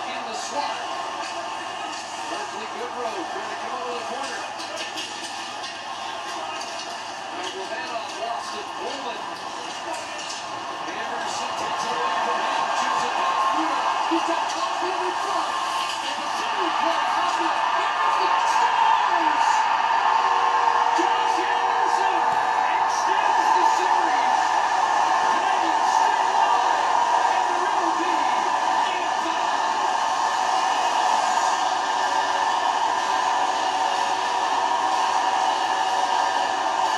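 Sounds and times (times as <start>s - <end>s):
arena crowd roaring and cheering: 0.0s - 36.9s
people shouting: 0.0s - 36.9s.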